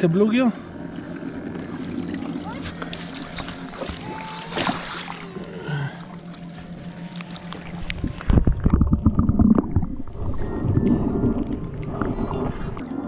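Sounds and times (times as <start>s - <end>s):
underwater rumbling and gurgling: 0.2s - 13.0s.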